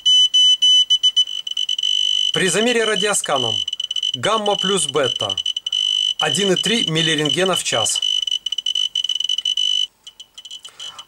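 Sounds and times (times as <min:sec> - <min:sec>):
dosimeter alarm tone: 0:00.0 - 0:11.0
short beeps: 0:00.0 - 0:11.0.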